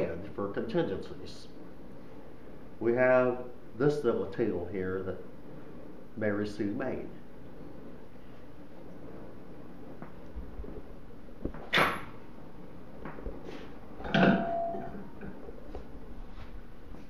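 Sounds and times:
steady low hum: 0.0 - 17.0
metal clank with ringing: 14.0 - 15.1.

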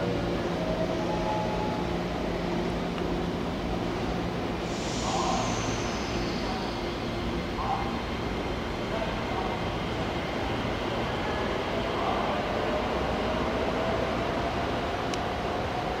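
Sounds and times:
train wheels rumbling on rail: 0.0 - 16.0.

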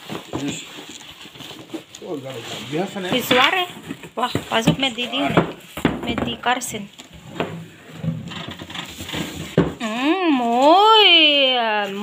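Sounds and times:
plastic bag rustling: 0.0 - 12.0.

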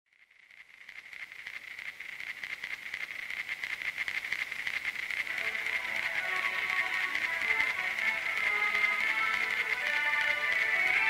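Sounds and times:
high-pitched pulsing hiss: 0.2 - 11.0.

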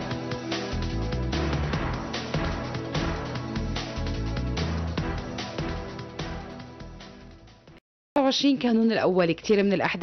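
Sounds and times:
instrumental music with heavy bass beat: 0.0 - 7.7.

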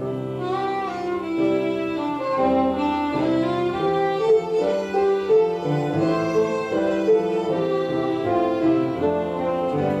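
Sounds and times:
concertina playing folk melody: 0.0 - 10.0.

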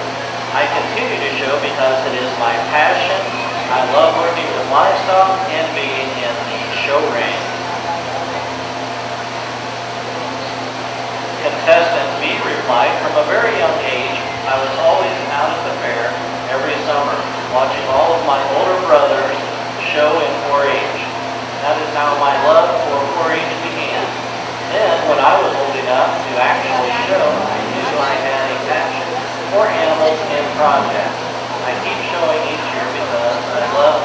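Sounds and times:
large fans rushing: 0.0 - 34.0
low steady hum: 0.0 - 34.0
person speaking: 24.7 - 32.4.

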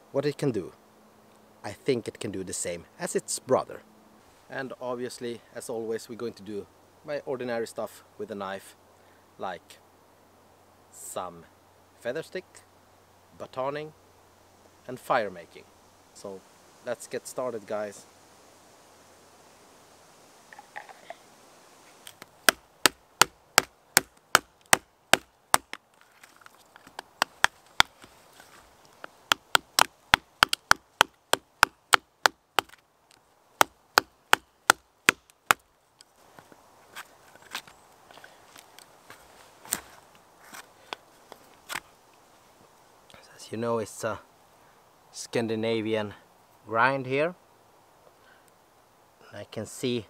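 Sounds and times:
knife chopping dry wood: 22.1 - 25.8, 29.3 - 32.8, 33.6 - 35.6.

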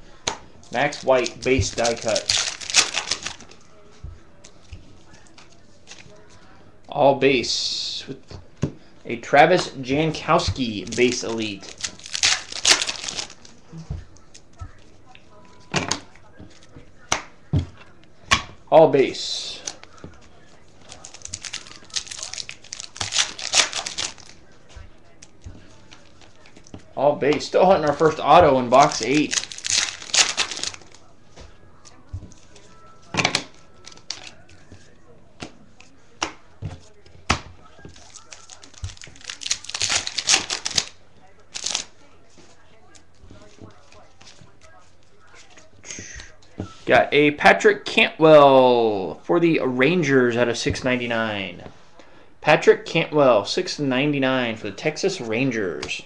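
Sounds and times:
cards rustling and tapping: 0.2 - 3.7, 9.5 - 14.9, 19.5 - 46.8
wrapper tearing and crinkling: 0.7 - 3.6, 10.8 - 13.6, 20.8 - 24.4, 27.9 - 31.0, 33.8 - 34.4, 37.9 - 41.9.

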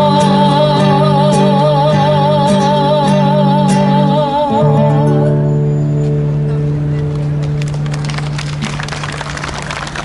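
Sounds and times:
audience applauding: 7.1 - 10.0.

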